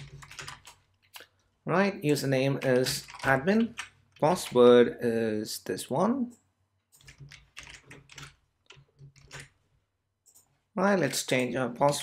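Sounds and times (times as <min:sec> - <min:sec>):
keyboard typing: 0:00.0 - 0:01.1, 0:02.1 - 0:04.6, 0:06.9 - 0:09.6.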